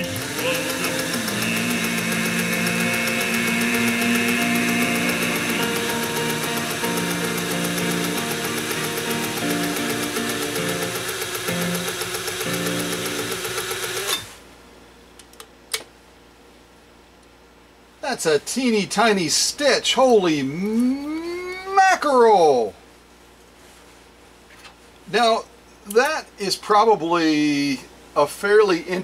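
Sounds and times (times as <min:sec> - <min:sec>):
man singing slow sad song: 0:00.1 - 0:06.6.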